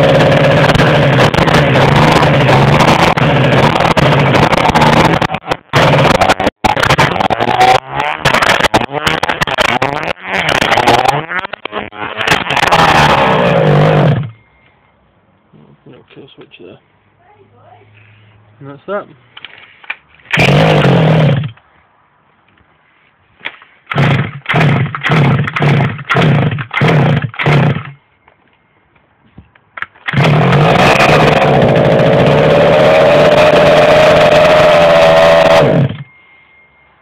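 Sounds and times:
small two-stroke engine starting: 0.0 - 14.4, 20.2 - 21.6, 23.9 - 28.0, 29.9 - 36.1.

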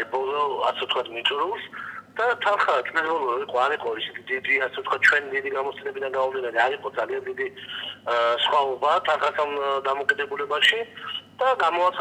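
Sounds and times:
man talking over telephone: 0.0 - 12.0.

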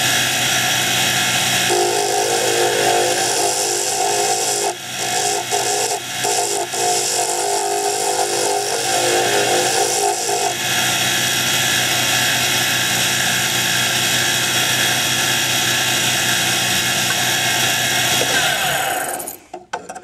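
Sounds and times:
wood lathe motor humming: 0.0 - 19.4
sanding spinning wood: 0.2 - 19.4.

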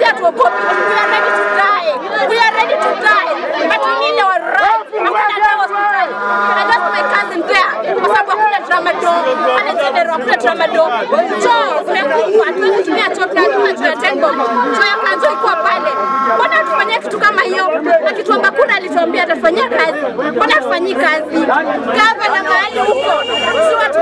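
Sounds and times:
crowd chatter: 0.0 - 24.0
woman speaking loudly: 0.0 - 24.0.

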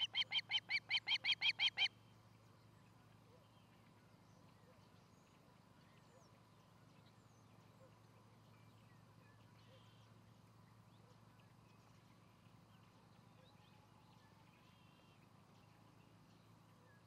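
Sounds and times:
low steady hum: 0.0 - 17.0.

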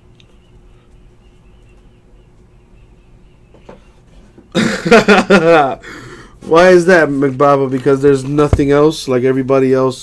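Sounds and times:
man laughing loudly: 4.5 - 6.1.

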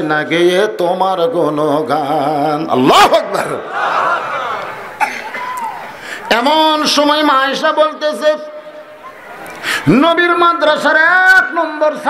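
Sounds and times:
man coughing: 5.0 - 5.5.

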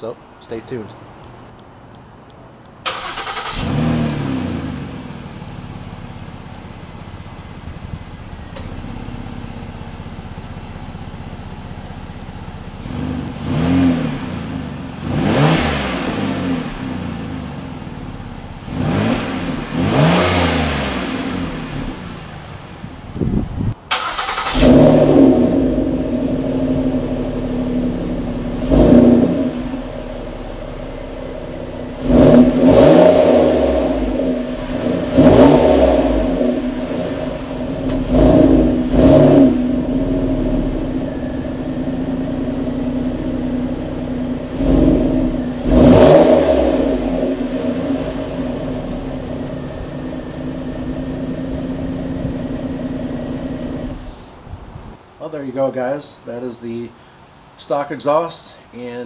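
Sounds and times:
car engine idling and revving: 1.2 - 55.0.

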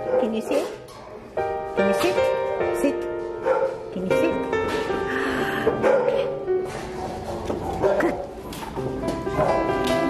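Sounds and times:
background music: 0.0 - 10.0
dogs barking and yipping: 3.4 - 3.9, 5.8 - 8.6.

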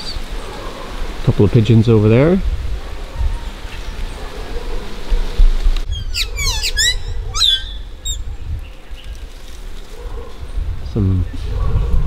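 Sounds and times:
bird calling sharp high notes: 5.9 - 8.3.

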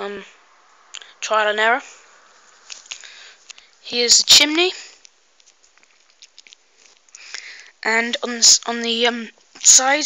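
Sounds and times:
small clicks and ticks: 5.0 - 7.5.

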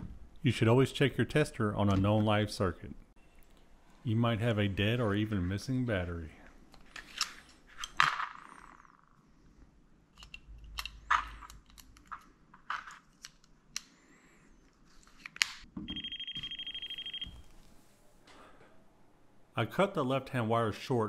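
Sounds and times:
plastic clicks and handling: 10.1 - 13.9
high fast-pulsing electronic beep: 15.9 - 17.3.

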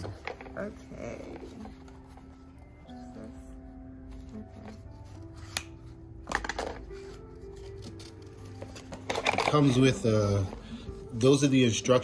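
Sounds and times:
background music with steady tones: 0.0 - 12.0
packaging handling noise: 4.0 - 11.4
plastic rustling: 6.3 - 11.8.

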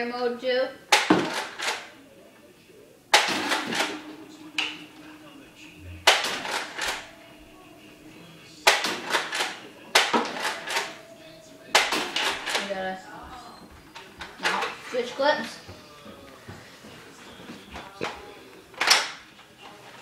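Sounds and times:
toy blaster shot snapping: 0.9 - 1.8, 3.2 - 4.0, 6.1 - 7.0, 8.7 - 10.9, 11.7 - 12.6
disc clattering on hard floor: 1.0 - 1.8, 8.7 - 11.0.

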